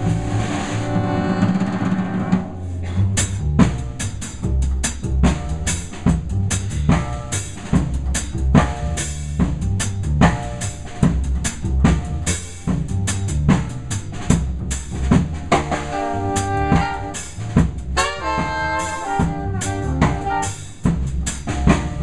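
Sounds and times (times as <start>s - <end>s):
horn section playing: 0.0s - 2.7s, 15.7s - 20.9s
snare and bass drum strikes: 0.0s - 22.0s
upright bass: 0.0s - 22.0s.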